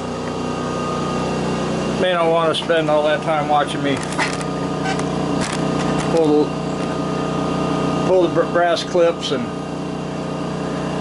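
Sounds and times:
machine humming: 0:00.0 - 0:11.0
handling clicks and knocks: 0:03.9 - 0:06.9.

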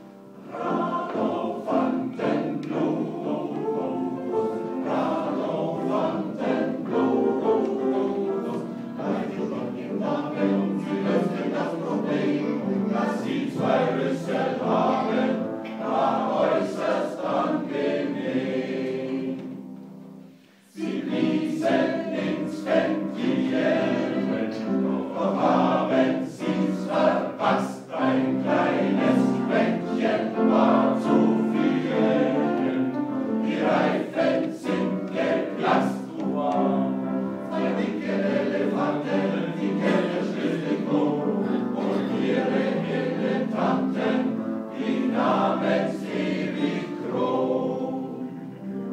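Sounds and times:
upright piano: 0:00.0 - 0:48.9
men's choir singing blues: 0:00.4 - 0:48.9.

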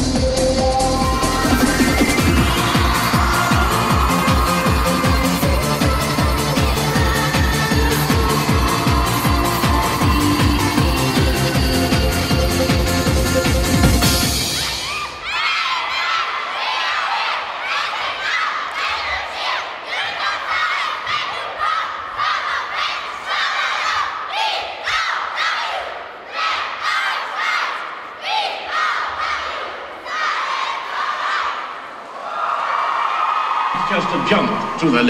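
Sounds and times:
crowd cheering: 0:00.6 - 0:23.4, 0:30.1 - 0:35.0
girls chanting a cheer: 0:02.1 - 0:12.9, 0:14.5 - 0:32.7.

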